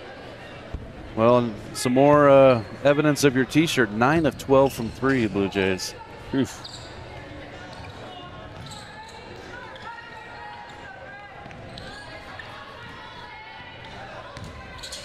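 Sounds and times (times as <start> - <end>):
crowd murmur: 0.0 - 15.0.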